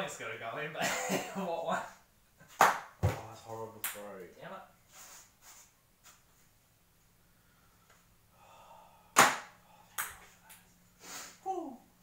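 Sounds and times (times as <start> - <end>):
vocal exclamation: 11.4 - 11.9.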